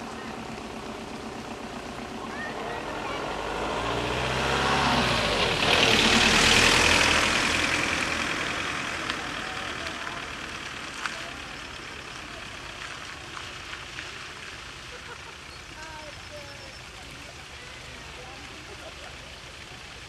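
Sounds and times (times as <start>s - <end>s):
car engine passing by: 0.0s - 14.2s
tyres hissing on wet road: 0.0s - 20.0s.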